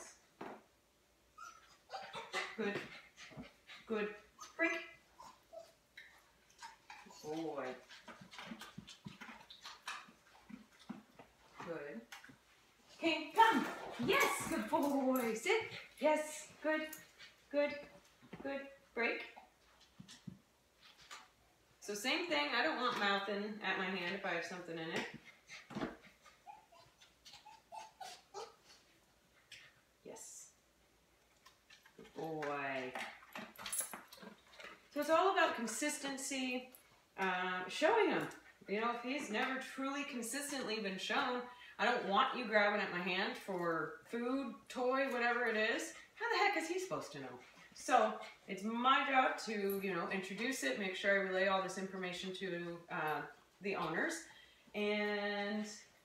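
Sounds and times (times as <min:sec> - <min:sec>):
dog whining: 0:01.4 - 0:02.4, 0:26.2 - 0:28.9.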